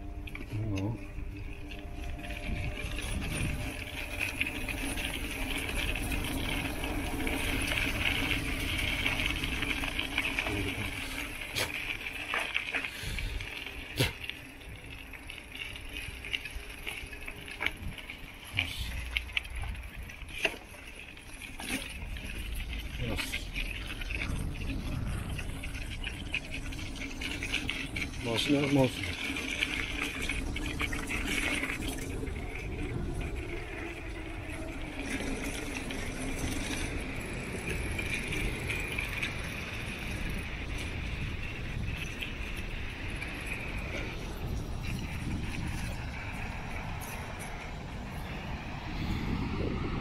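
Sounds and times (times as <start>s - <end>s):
bicycle rolling over gravel: 0.0s - 50.0s
bike rattling over bumps: 0.0s - 50.0s.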